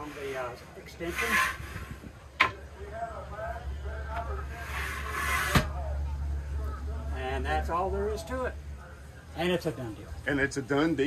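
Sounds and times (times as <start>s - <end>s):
faint voices: 0.0s - 11.0s.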